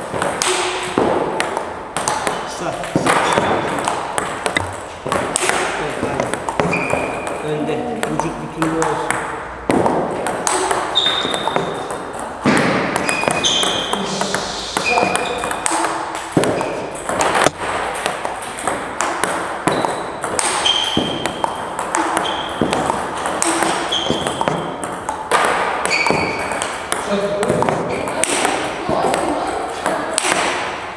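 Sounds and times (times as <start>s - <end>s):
ping pong balls bouncing on table: 0.0s - 30.9s
ping pong balls hitting bats: 0.0s - 30.9s.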